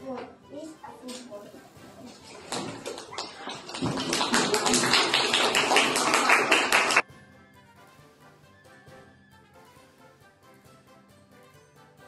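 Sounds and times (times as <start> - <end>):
children clapping: 2.1 - 7.0.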